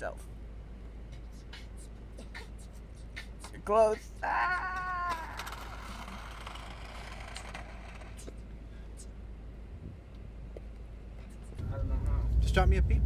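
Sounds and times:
man shouting: 0:03.6 - 0:05.5.

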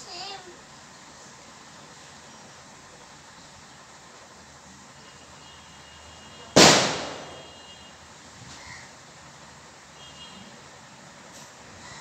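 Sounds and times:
loud bang: 0:06.6 - 0:07.5.

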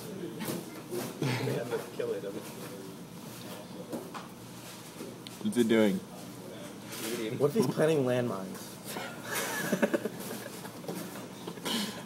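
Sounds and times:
person laughing: 0:09.3 - 0:10.8.

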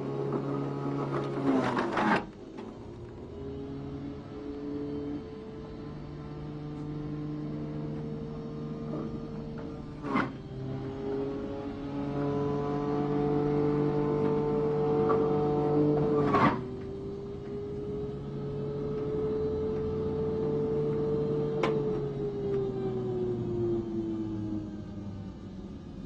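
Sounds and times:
electric juicer motor whining: 0:00.0 - 0:26.0.

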